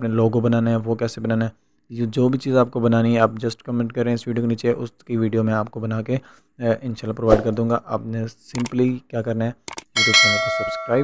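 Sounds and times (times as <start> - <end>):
quick double click: 8.6 - 8.8
bright bell chime: 10.0 - 11.0.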